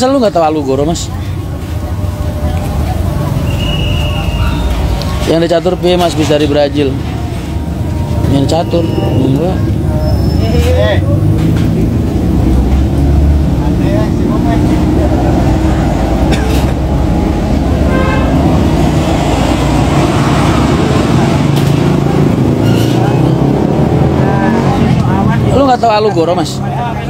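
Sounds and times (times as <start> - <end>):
road traffic: 0.0 - 27.0.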